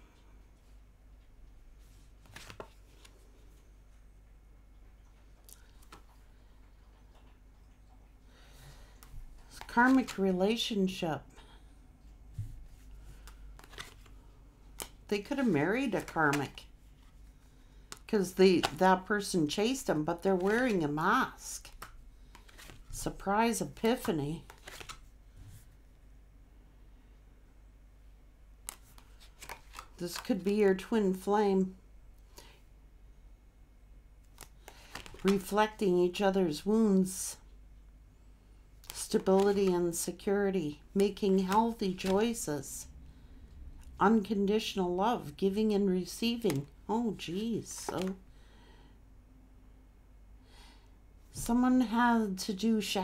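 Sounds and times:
faint room hiss: 0:00.0 - 0:53.0
cards being shuffled: 0:01.8 - 0:03.6, 0:05.6 - 0:06.2, 0:09.0 - 0:10.4, 0:12.7 - 0:17.2, 0:17.9 - 0:18.8, 0:19.6 - 0:25.1, 0:28.6 - 0:30.9, 0:34.2 - 0:35.8, 0:38.8 - 0:40.2, 0:41.0 - 0:42.5, 0:46.3 - 0:48.2
steady low hum: 0:29.9 - 0:52.3
card snaps: 0:47.8 - 0:48.2.

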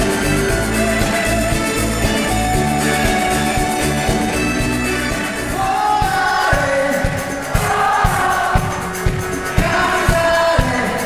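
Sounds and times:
pop band playing: 0:00.0 - 0:11.0
man and woman singing: 0:05.6 - 0:11.0.

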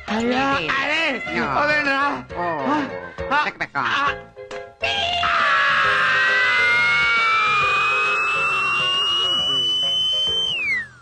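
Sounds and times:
rising whistle-like tone: 0:07.5 - 0:11.0.

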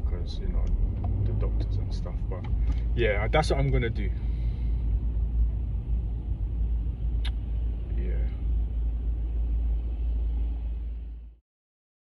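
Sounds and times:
road and engine rumble: 0:00.0 - 0:11.4.

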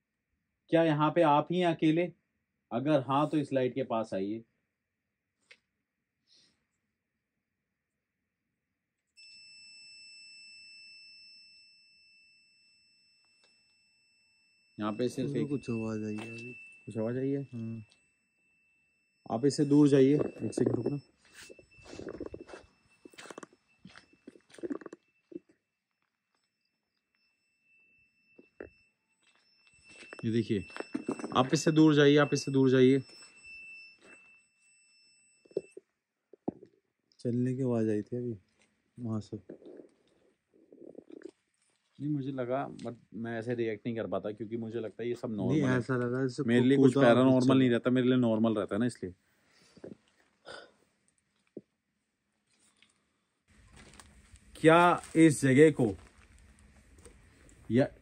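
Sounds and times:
high-pitched electronic alert tone: 0:14.9 - 0:17.8, 0:19.3 - 0:25.5, 0:29.8 - 0:33.4, 0:45.4 - 0:47.8.

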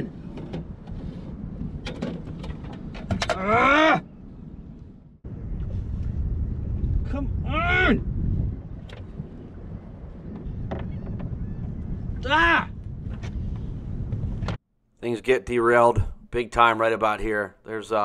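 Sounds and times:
low rumble: 0:04.2 - 0:14.6
man yelling in frustration: 0:07.1 - 0:08.0, 0:12.2 - 0:12.7.

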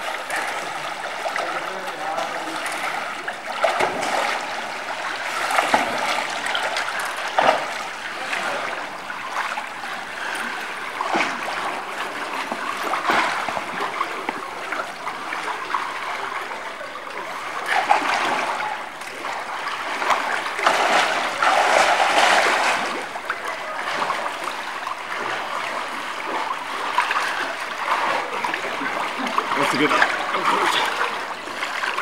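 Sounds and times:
water splashing from swimming: 0:00.0 - 0:32.0.

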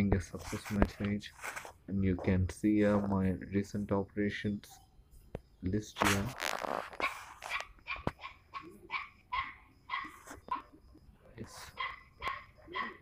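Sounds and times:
dog yapping: 0:07.0 - 0:10.7, 0:11.7 - 0:13.0.

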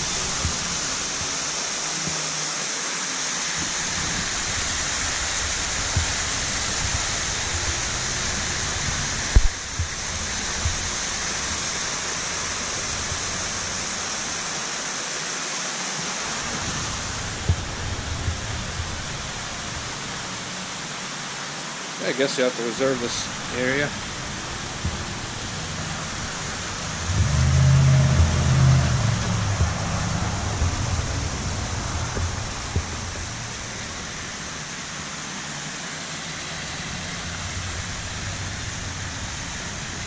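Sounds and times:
steady rushing hiss: 0:00.0 - 0:40.0.

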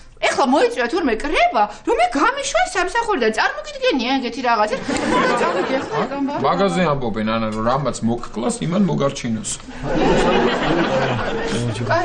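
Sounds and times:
people talking: 0:00.2 - 0:12.0.

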